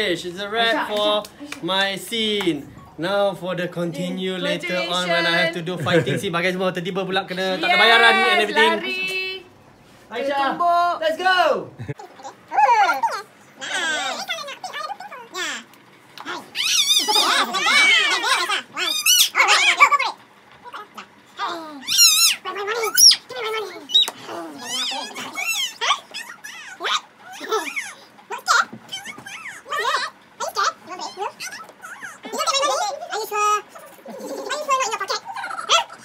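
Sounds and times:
girl squealing laughter: 16.6 - 18.2
girl squealing and giggling: 16.6 - 19.7, 23.9 - 28.1.

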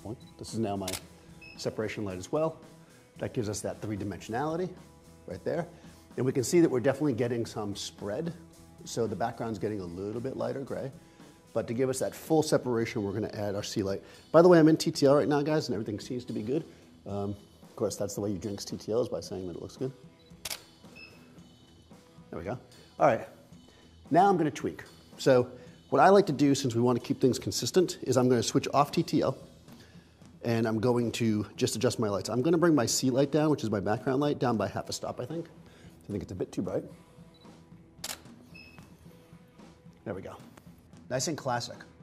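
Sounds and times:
camera shutter click: 0.8 - 1.1, 20.4 - 20.8, 37.4 - 38.4.

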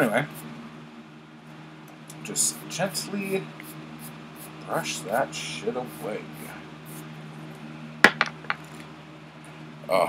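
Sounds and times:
hard objects clacking on desk: 8.0 - 8.8.

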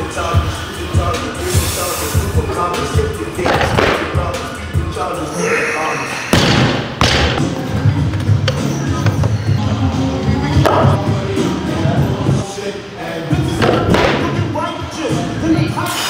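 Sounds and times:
gym music with vocals: 0.0 - 16.0.

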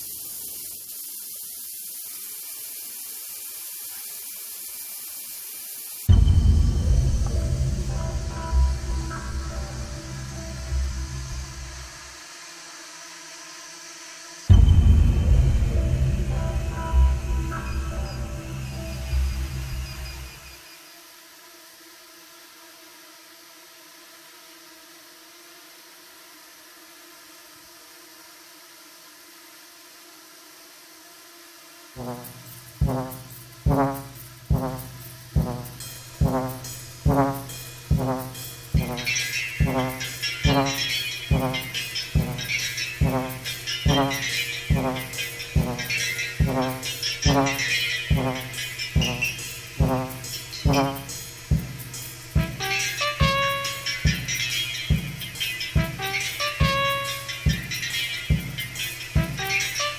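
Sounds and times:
steady hiss: 0.0 - 59.9
deep booming drum hits: 6.1 - 8.3, 14.5 - 16.4
drones hovering hum: 6.1 - 12.2, 14.5 - 20.6, 32.0 - 59.9.

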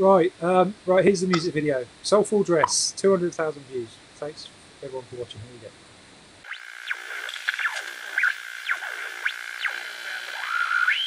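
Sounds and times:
radio tuning whistle and whines: 6.4 - 11.0.

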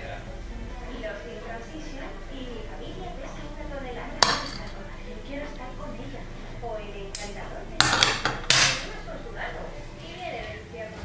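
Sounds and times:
sharp knocks of hard object: 7.2 - 8.8.

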